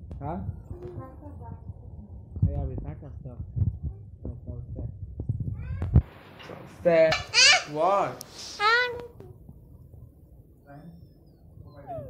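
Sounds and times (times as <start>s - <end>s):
high-pitched cry: 7.1s - 7.8s, 8.6s - 9.0s.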